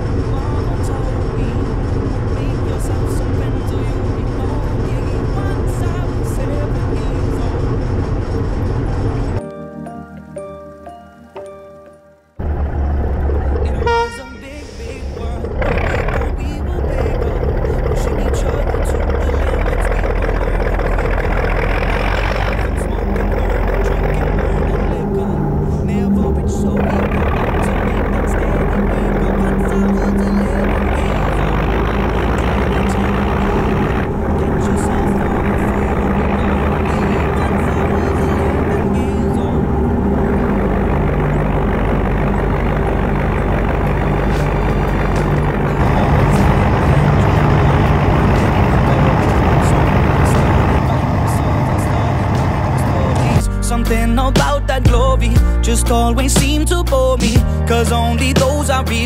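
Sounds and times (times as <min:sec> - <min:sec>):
diesel locomotive engine under load: 0:00.0 - 0:09.4, 0:12.2 - 0:59.0.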